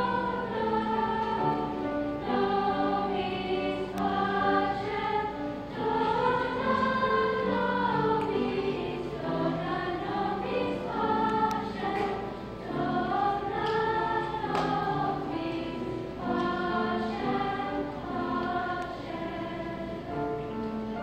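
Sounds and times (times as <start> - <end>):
girls choir singing: 0.0 - 21.0.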